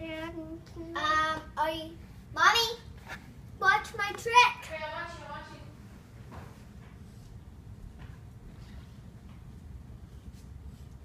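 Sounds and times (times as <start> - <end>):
young boy speaking: 0.0 - 2.9, 3.6 - 5.7.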